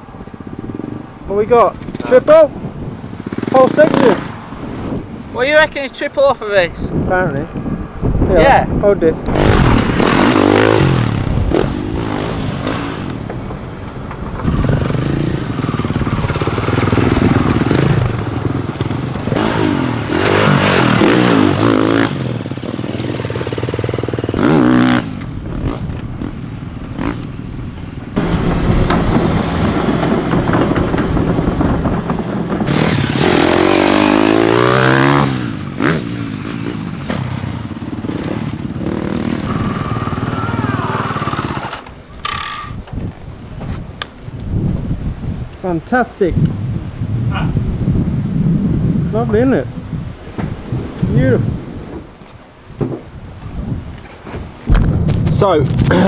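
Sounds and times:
dirt bike engines revving: 0:00.0 - 0:42.9.

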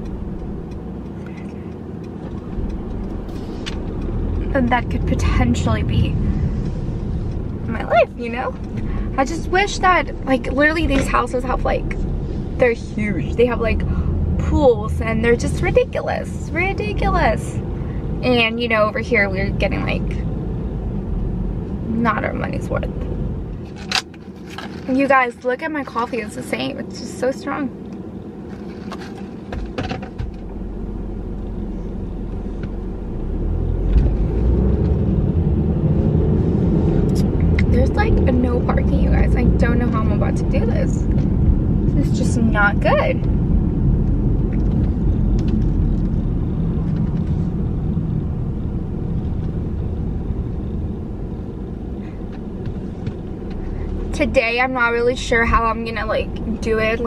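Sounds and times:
road rumble inside car: 0:00.0 - 0:57.0.

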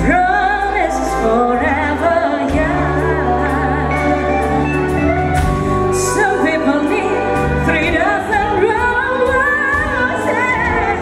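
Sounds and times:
live band playing: 0:00.0 - 0:11.0
woman singing with vibrato: 0:00.0 - 0:11.0.

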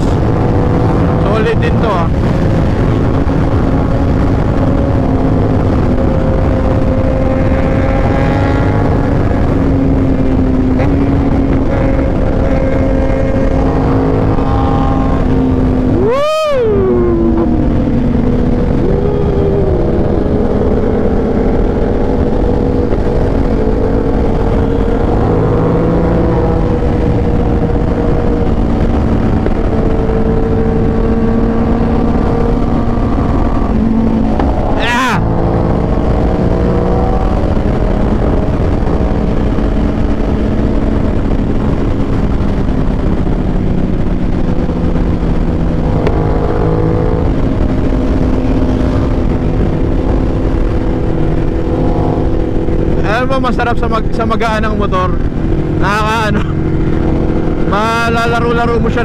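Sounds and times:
heavy wind rush: 0:00.0 - 0:59.0
motorcycle engine cruising: 0:00.0 - 0:59.0.

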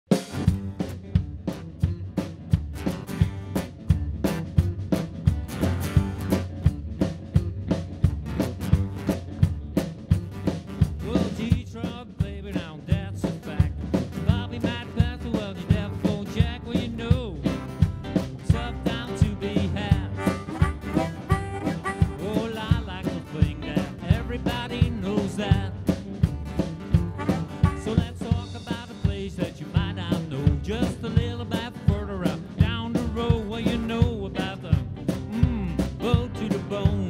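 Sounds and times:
rock and roll band playing: 0:00.1 - 0:37.0
harmonica lead: 0:18.5 - 0:23.0, 0:26.9 - 0:28.3.

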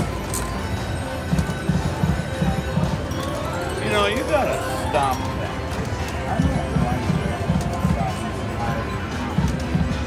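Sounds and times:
slot machine reel-spin sounds: 0:00.0 - 0:05.7
game music with low thuds: 0:01.2 - 0:03.1.

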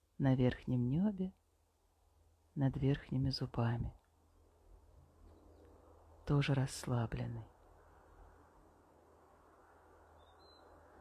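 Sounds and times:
faint outdoor hiss: 0:00.0 - 0:11.0
faint bird chirp: 0:05.2 - 0:06.4, 0:10.0 - 0:11.0.

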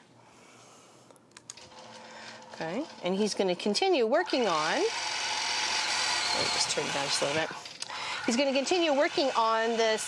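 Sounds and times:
faint steady machine hum: 0:00.0 - 0:10.0.

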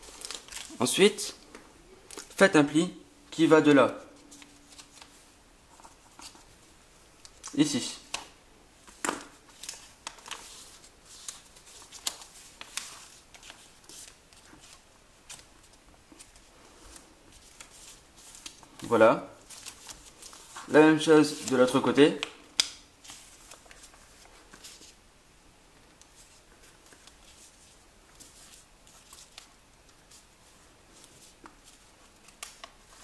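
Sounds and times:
paper crackling and rustling: 0:00.0 - 0:01.0, 0:04.1 - 0:06.6, 0:07.2 - 0:25.0, 0:25.9 - 0:33.0.

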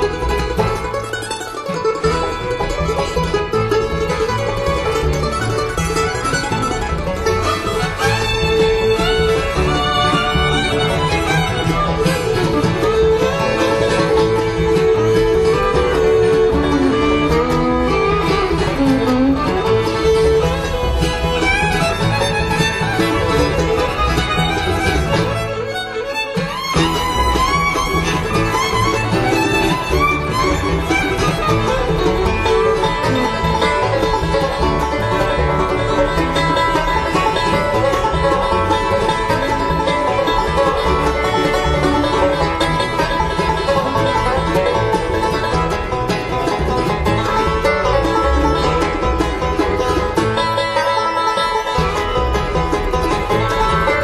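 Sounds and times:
bluegrass band playing: 0:00.0 - 0:54.0.

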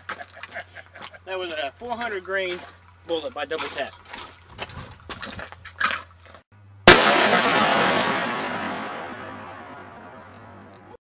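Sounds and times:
revolver gunshot: 0:06.9 - 0:10.6.

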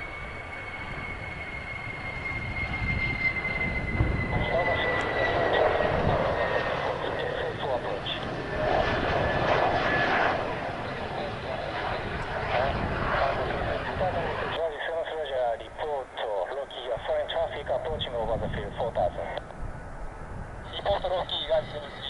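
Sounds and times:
jet engine whine: 0:00.0 - 0:22.0.

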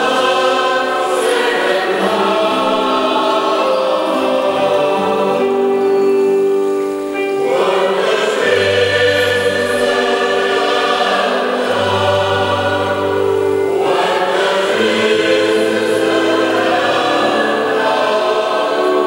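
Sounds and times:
acoustic guitars: 0:00.0 - 0:19.0
electronic keyboard: 0:00.0 - 0:19.0
mixed choir singing in harmony: 0:00.0 - 0:19.0.

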